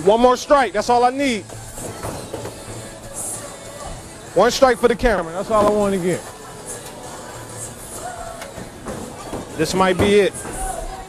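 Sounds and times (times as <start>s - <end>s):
faint chatter: 1.7s - 11.0s.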